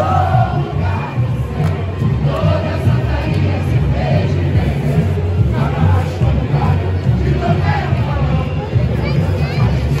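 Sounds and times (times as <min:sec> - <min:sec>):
bass drums pulsing: 0:00.0 - 0:10.0
crowd singing: 0:00.0 - 0:10.0.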